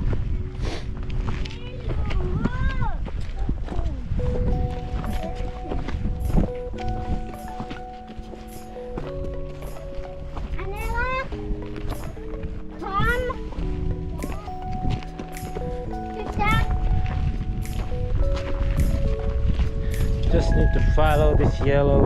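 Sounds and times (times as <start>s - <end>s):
background music with held chords: 4.1s - 22.0s
light ticking beat: 4.3s - 22.0s.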